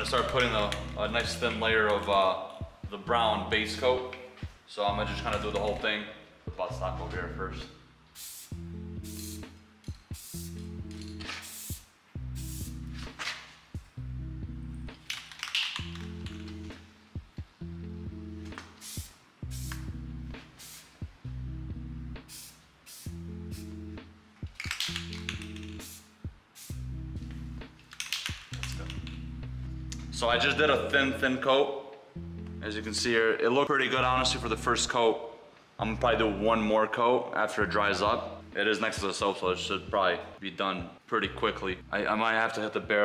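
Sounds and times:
music with low chords: 0:00.0 - 0:15.0, 0:15.8 - 0:31.4, 0:32.2 - 0:33.3, 0:34.0 - 0:34.9, 0:37.6 - 0:43.0
spray-paint can hissing: 0:08.1 - 0:13.1, 0:15.0 - 0:16.5, 0:18.6 - 0:21.1, 0:22.2 - 0:23.8, 0:24.5 - 0:29.2.

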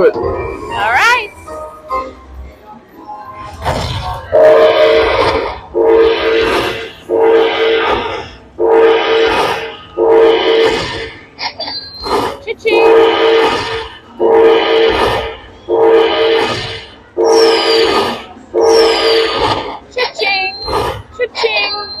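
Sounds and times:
slot machine horn-like chime: 0:04.3 - 0:05.2, 0:05.8 - 0:10.6, 0:12.7 - 0:13.4, 0:14.2 - 0:16.5, 0:17.2 - 0:18.0.

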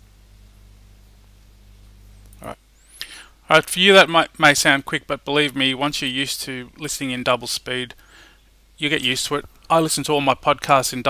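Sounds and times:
low electrical hum: 0:00.0 - 0:11.0.

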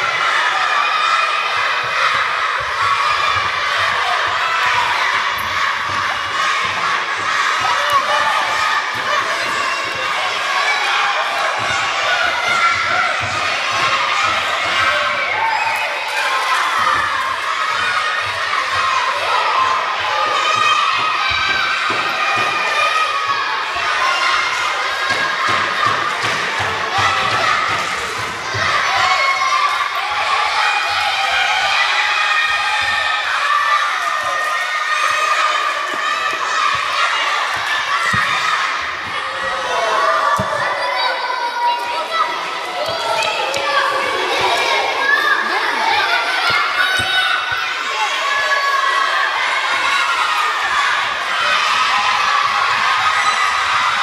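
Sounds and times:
children shouting and cheering: 0:00.0 - 0:54.0.

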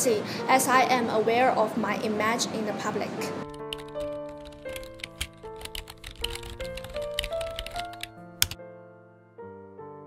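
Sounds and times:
background music with sustained notes: 0:03.2 - 0:10.0
keyboard typing clicks: 0:03.5 - 0:08.6.

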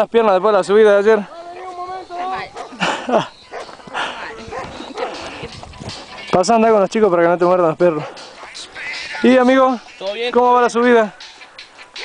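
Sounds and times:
dogs barking: 0:01.5 - 0:06.2, 0:07.9 - 0:08.6.

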